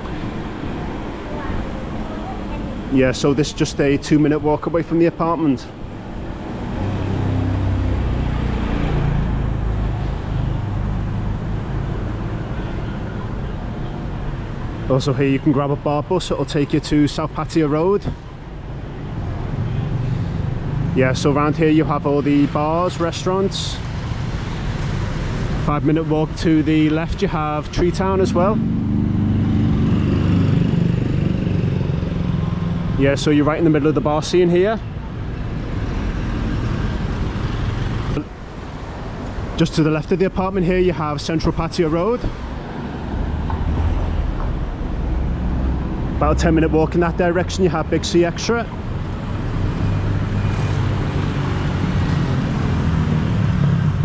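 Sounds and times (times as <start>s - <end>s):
scooter and car engines: 0.0s - 15.5s, 18.4s - 54.0s
street traffic noise: 0.0s - 54.0s
vehicle engine droning: 20.1s - 34.6s.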